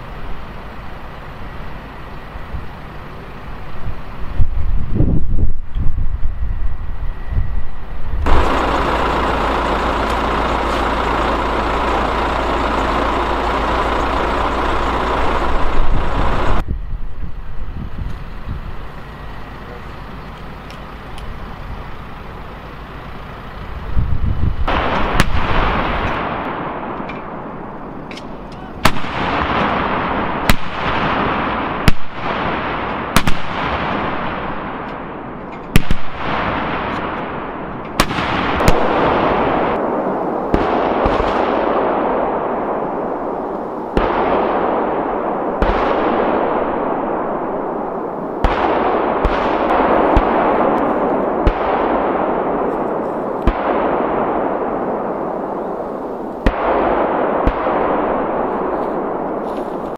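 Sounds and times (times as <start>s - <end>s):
vehicle engine running: 6.7s - 28.8s
howitzer booms with echo: 8.2s - 16.7s, 22.0s - 59.9s.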